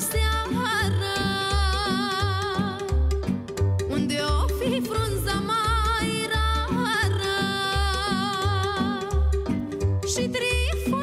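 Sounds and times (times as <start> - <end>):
woman singing with vibrato: 0.0 - 11.0.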